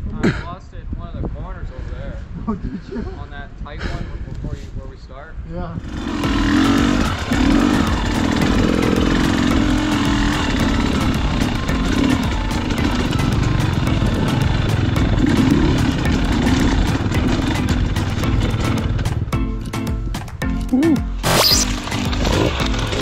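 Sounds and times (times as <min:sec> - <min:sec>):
dirt bike engine revving: 0:05.8 - 0:19.4, 0:21.2 - 0:23.0.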